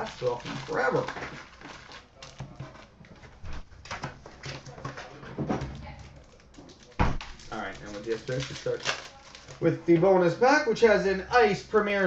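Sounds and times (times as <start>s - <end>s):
foil packs rustling: 0.0s - 10.6s.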